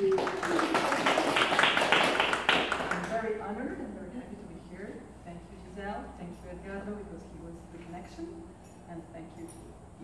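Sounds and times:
group clapping: 0:00.0 - 0:03.3.

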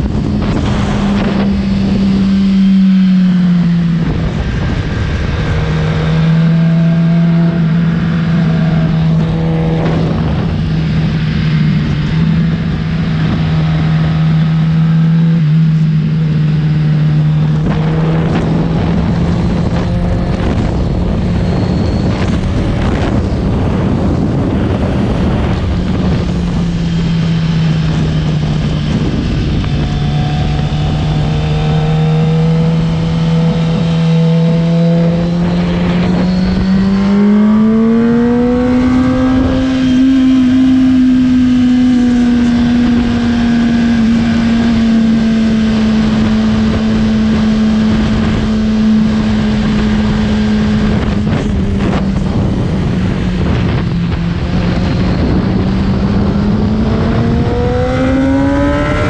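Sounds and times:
motorcycle engine running hard: 0:00.0 - 0:59.0
wind rushing over microphone: 0:00.0 - 0:59.0.

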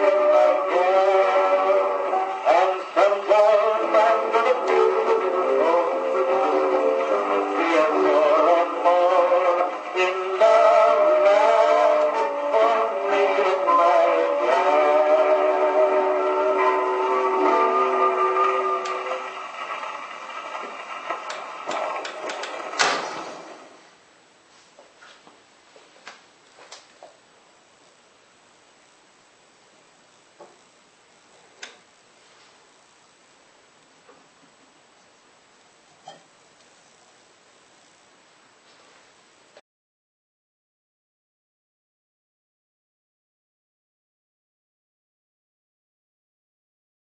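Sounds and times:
phonograph playing an old song: 0:00.0 - 0:39.6
record surface crackle and clicks: 0:18.4 - 0:22.8.

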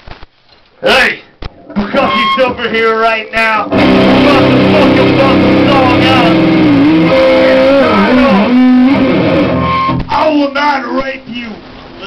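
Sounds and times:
distorted electric guitar: 0:01.5 - 0:10.3.

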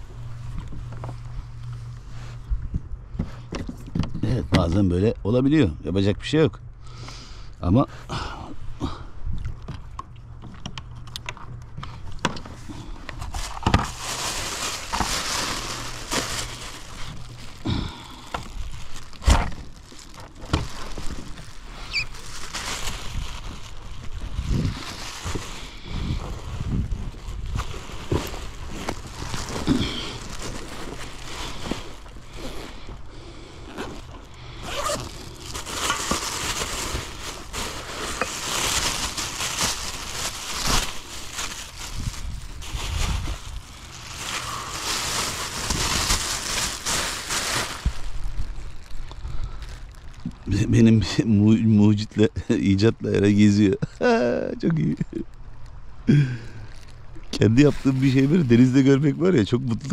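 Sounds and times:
plastic bag rustling: 0:12.0 - 0:51.2, 0:56.6 - 0:59.9.

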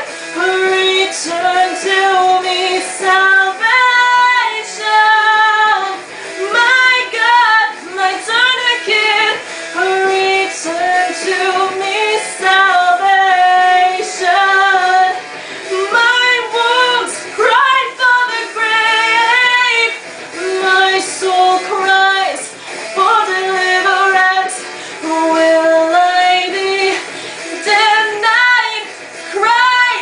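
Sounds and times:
young woman singing: 0:00.0 - 0:30.0
short breaths: 0:15.3 - 0:15.7.

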